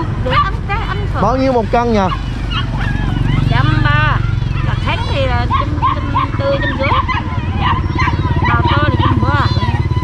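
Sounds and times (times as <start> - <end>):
motorcycle engine idling: 0.0 - 10.0
caged animals crying: 1.2 - 10.0.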